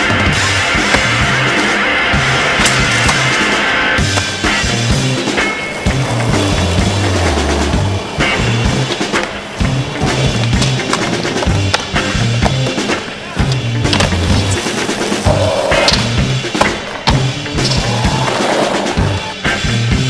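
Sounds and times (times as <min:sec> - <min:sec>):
music with deep bass line: 0:00.0 - 0:09.0, 0:09.6 - 0:18.4, 0:19.0 - 0:20.0
skateboard rolling on pavement: 0:00.0 - 0:19.6
skateboard clacking on ground: 0:08.2 - 0:19.0.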